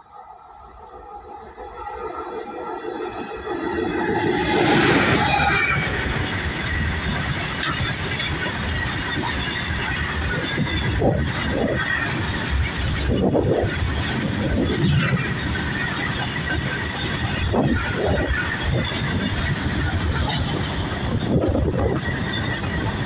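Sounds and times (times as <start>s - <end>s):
electric locomotive humming: 0.0s - 23.0s
freight wagons rumbling on rails: 0.6s - 23.0s.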